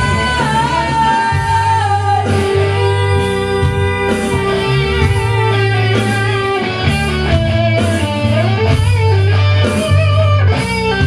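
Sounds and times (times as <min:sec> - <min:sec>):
bass line: 0:00.0 - 0:11.0
electric guitar: 0:00.0 - 0:11.0.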